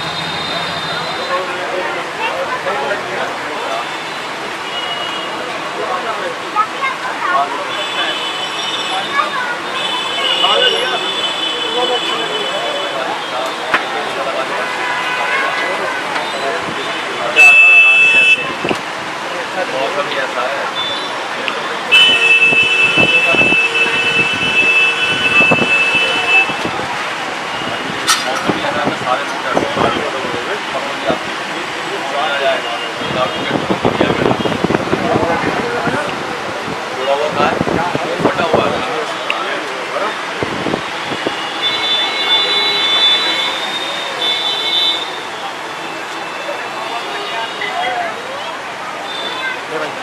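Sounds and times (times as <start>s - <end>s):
background chatter: 0.0s - 50.0s.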